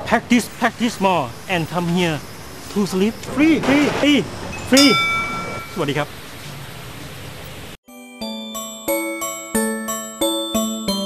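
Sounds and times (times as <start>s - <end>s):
outdoor ambience hiss: 0.0s - 7.8s
music: 7.8s - 11.0s.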